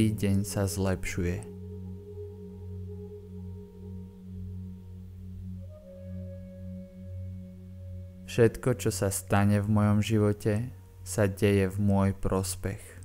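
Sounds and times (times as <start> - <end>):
ambient meditation drone music: 0.0 - 13.0.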